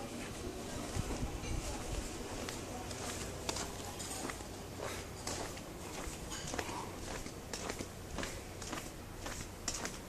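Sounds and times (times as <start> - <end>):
footsteps on concrete: 1.0 - 10.0.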